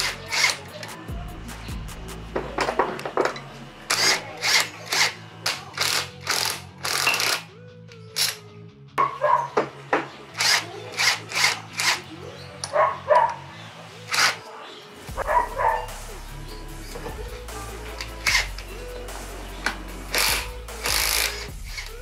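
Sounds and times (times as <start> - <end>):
background music with bass line: 0.0 - 14.4, 15.0 - 22.0
impact wrench hammering: 19.6 - 21.9.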